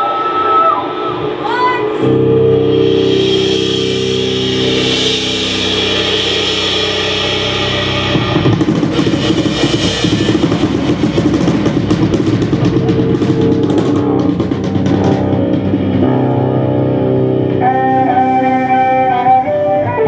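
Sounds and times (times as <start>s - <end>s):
cymbals: 0.0s - 20.0s
sustained guitar chord: 2.0s - 19.8s
rock band playing: 2.0s - 20.0s.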